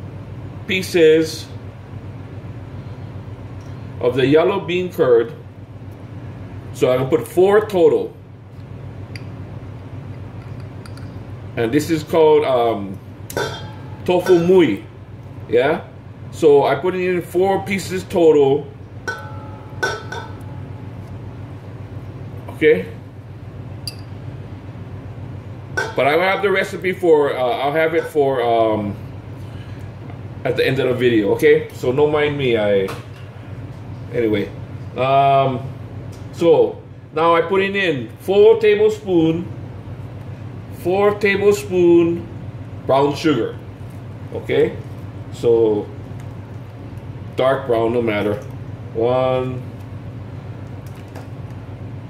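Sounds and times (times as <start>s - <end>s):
steady low hum: 0.0s - 52.0s
metal spoon in steel bowl: 13.3s - 14.5s, 19.1s - 20.6s
person speaking: 14.0s - 18.8s, 25.9s - 29.0s.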